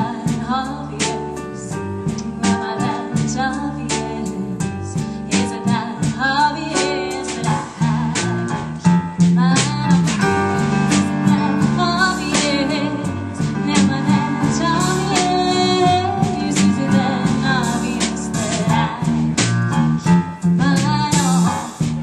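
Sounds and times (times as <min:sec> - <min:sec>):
woman singing: 0:00.0 - 0:19.4, 0:20.0 - 0:21.7
drum and cymbal hits: 0:00.0 - 0:22.0
guitar: 0:00.0 - 0:22.0
keyboard: 0:00.0 - 0:22.0.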